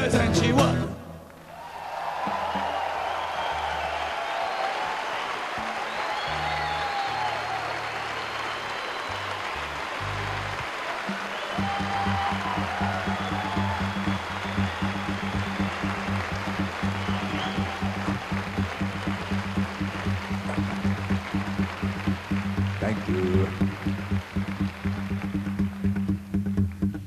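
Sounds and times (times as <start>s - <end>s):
live band music: 0.0s - 1.0s, 9.4s - 27.0s
steady drum beat: 11.1s - 26.6s.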